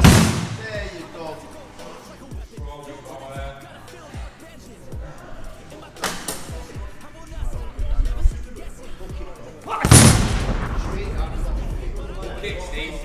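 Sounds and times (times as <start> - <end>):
punch bang on machine pad: 0.0 - 0.6, 9.9 - 10.8.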